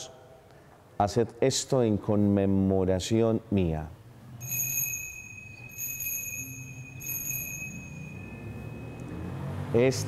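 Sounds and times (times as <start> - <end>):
small bell ringing: 4.4 - 9.6.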